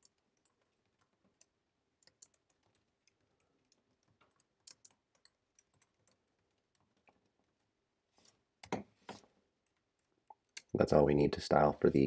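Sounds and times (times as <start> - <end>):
typing on computer keyboard: 0.0 - 7.7.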